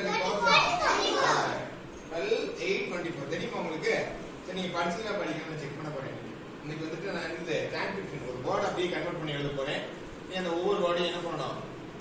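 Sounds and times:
children calling out: 0:00.0 - 0:01.8.

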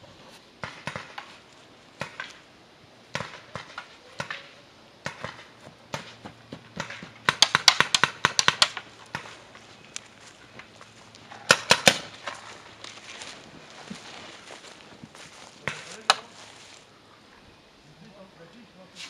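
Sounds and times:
paintball markers firing: 0:03.1 - 0:09.4, 0:11.4 - 0:12.4.

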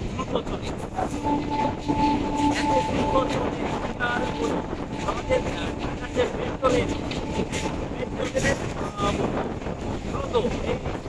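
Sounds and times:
steady humming tone: 0:00.0 - 0:11.0
train wheels clattering on rails: 0:00.0 - 0:11.0.

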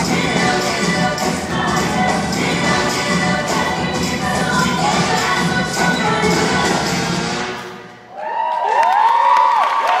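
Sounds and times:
high-pitched voices whooping and cheering: 0:08.1 - 0:10.0.

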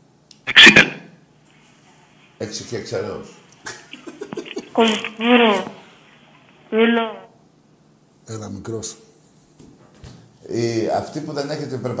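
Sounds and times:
man sneezing: 0:00.5 - 0:01.0.

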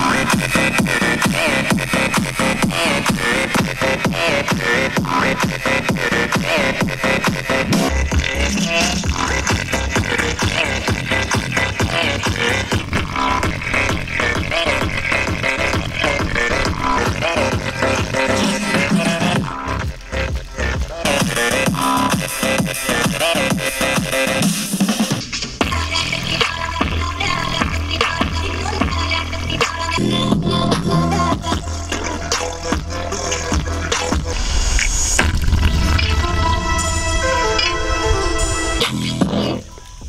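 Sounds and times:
electronic dance music: 0:00.0 - 0:39.6.

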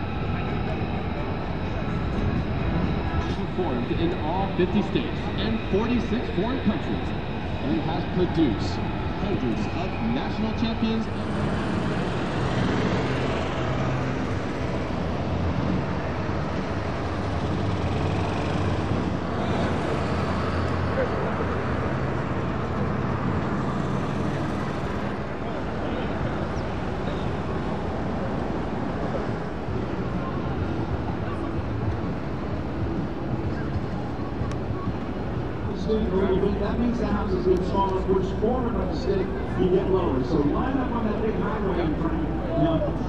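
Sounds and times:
crowd rumble and hiss: 0:00.0 - 0:43.0
people talking: 0:00.3 - 0:11.1, 0:35.7 - 0:43.0.

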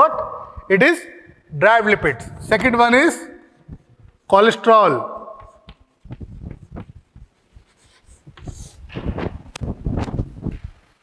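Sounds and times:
rustling on clip-on microphone: 0:03.5 - 0:04.3, 0:05.4 - 0:11.0.

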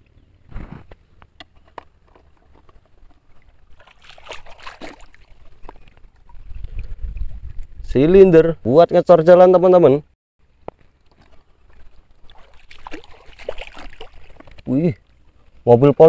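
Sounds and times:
river water sloshing and trickling: 0:01.6 - 0:07.8, 0:10.5 - 0:15.6.

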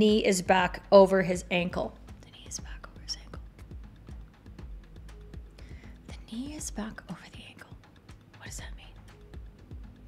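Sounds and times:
faint background music: 0:00.0 - 0:10.0
soft breathy whisper: 0:02.2 - 0:03.5, 0:08.4 - 0:09.1.

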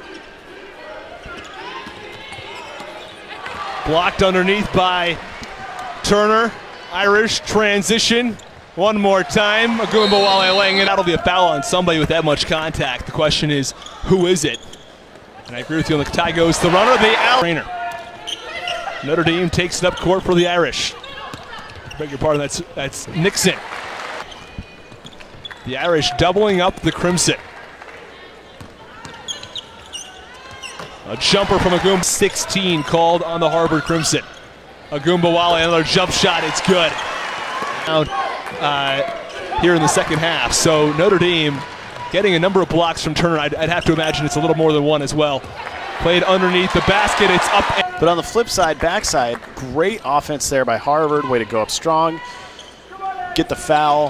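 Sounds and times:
arena crowd murmur: 0:00.0 - 0:11.9
faint players and crowd voices: 0:00.0 - 0:54.0
sneaker squeaks: 0:01.1 - 0:03.8, 0:13.7 - 0:16.1, 0:17.9 - 0:19.0, 0:21.0 - 0:22.6, 0:24.2 - 0:26.1, 0:28.5 - 0:31.1, 0:33.7 - 0:34.7, 0:52.4 - 0:53.0.

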